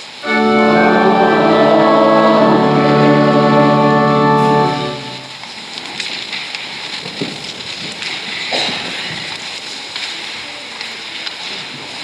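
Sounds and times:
congregation rustling and shuffling: 0.2s - 5.6s.

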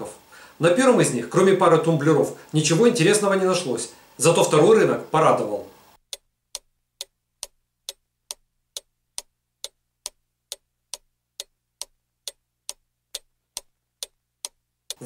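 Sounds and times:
clock ticking: 6.0s - 15.0s.

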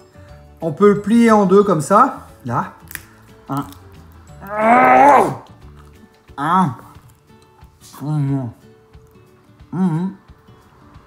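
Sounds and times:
background music: 0.0s - 11.0s
man's drawn-out oh of pleasure: 4.4s - 5.5s.

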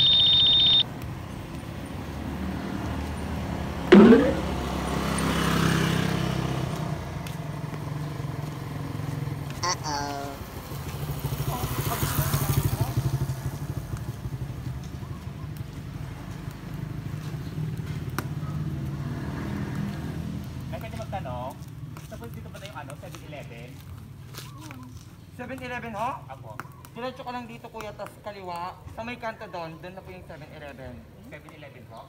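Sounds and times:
vehicle engine humming: 1.0s - 20.0s.

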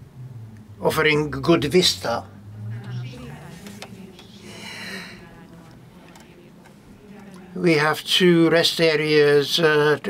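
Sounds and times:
person drawing breath: 4.3s - 5.3s.

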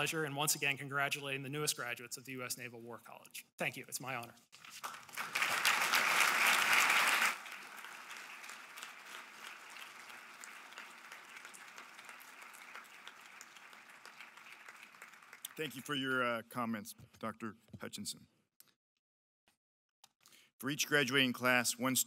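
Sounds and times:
audience applauding: 4.6s - 16.0s.

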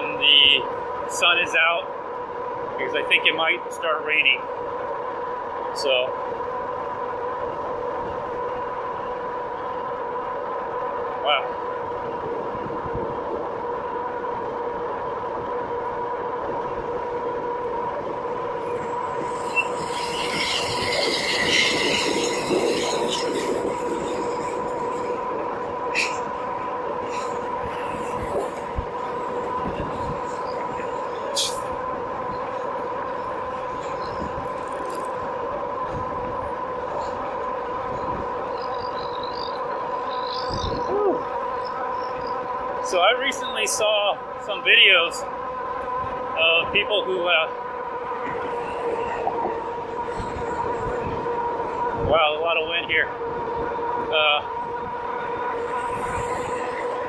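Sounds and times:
wind: 0.0s - 57.0s.

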